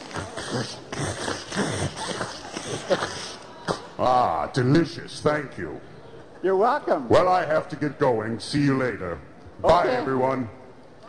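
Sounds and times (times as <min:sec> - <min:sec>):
man grunting and gulping: 0:00.0 - 0:04.0.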